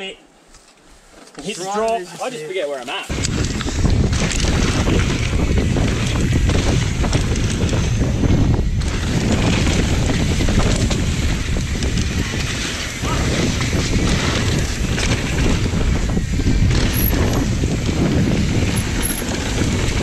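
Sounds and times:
tyres rumbling over dirt: 0:03.1 - 0:20.0
wind on microphone: 0:03.1 - 0:20.0.

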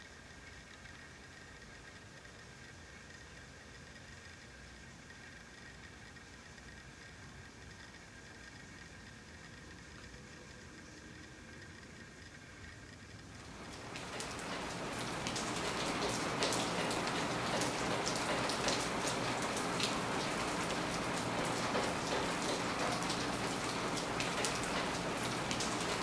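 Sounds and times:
steady rain with drop ticks: 0:00.0 - 0:26.0.

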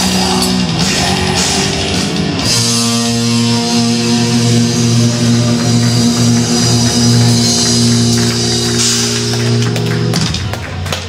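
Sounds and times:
guitar and bass droning with buzz: 0:00.0 - 0:11.0.

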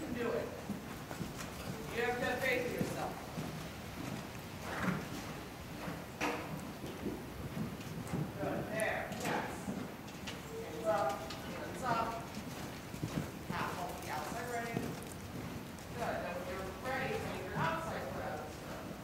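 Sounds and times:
horse hoofbeats on sand: 0:00.2 - 0:19.0.

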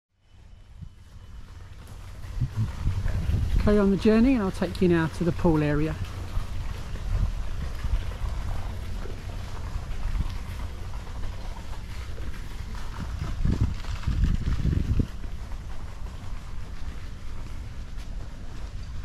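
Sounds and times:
wind buffeting microphone: 0:00.6 - 0:19.0.

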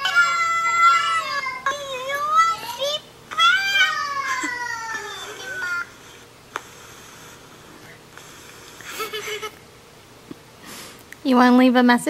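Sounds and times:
young child's high-pitched voice: 0:00.0 - 0:05.9.

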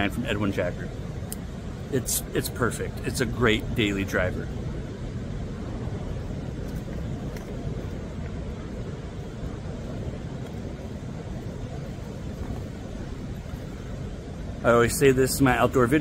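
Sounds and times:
ocean surf breaking: 0:00.0 - 0:16.0.

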